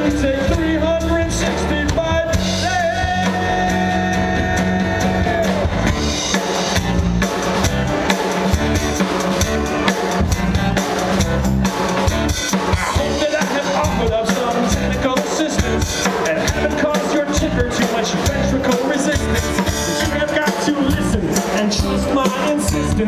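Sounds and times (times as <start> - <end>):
drums driving: 0.0 - 23.0
live rock band playing: 0.0 - 23.0.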